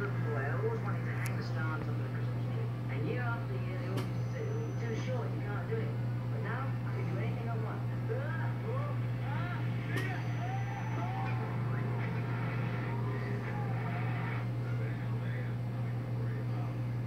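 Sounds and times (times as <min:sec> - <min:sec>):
steady low hum: 0:00.0 - 0:17.0
television dialogue: 0:00.0 - 0:17.0.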